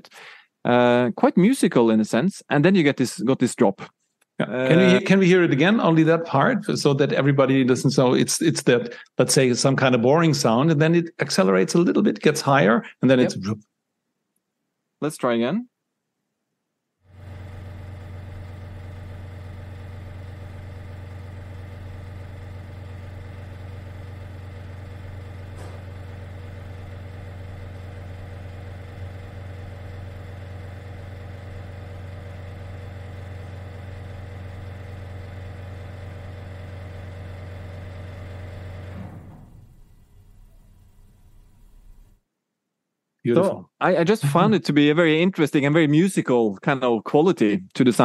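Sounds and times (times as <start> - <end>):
ventilation fan humming: 4.4 - 10.6, 12.2 - 13.6, 17.1 - 42.2, 43.3 - 44.8.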